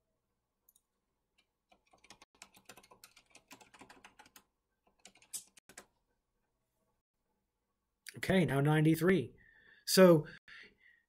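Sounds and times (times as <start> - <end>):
typing on computer keyboard: 1.4 - 5.9.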